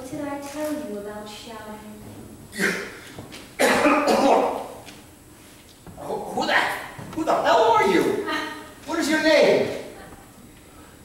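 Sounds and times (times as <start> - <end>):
person coughing harshly: 2.5 - 3.0, 3.6 - 4.6.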